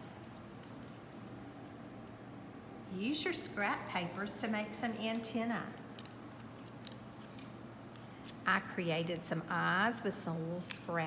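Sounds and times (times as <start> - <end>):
paper rustling: 5.1 - 8.4.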